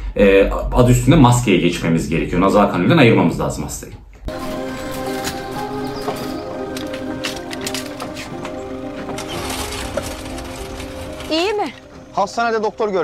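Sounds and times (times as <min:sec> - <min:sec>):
sustained background music chord: 0:04.3 - 0:13.0.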